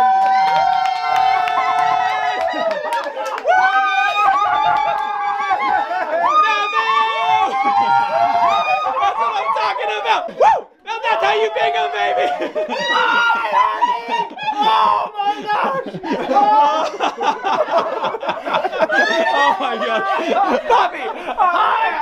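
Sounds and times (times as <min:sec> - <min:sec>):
loud cry: 0:00.0 - 0:22.0
people talking excitedly: 0:04.2 - 0:22.0
laughter: 0:05.4 - 0:06.6, 0:07.2 - 0:09.4, 0:12.2 - 0:22.0.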